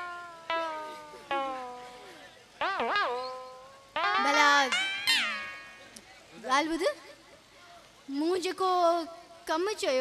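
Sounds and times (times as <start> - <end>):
struck instrumental notes: 0.0 - 6.7.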